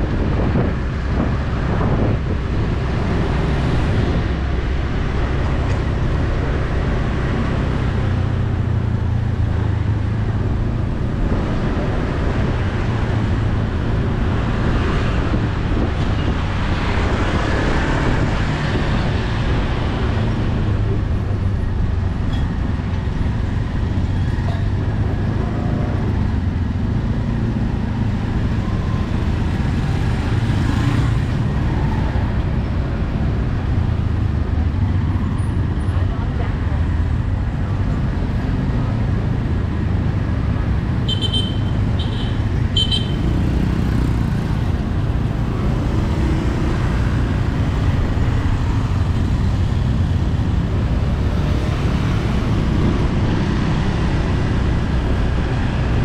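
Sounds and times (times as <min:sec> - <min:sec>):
engine and road rumble: 0:00.0 - 0:56.0.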